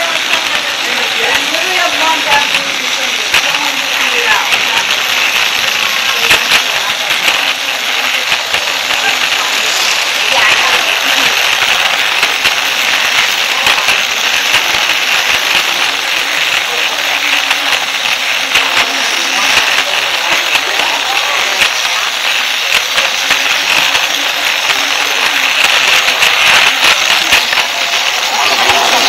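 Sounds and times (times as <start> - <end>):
toy train motor whirring: 0.0 - 29.0.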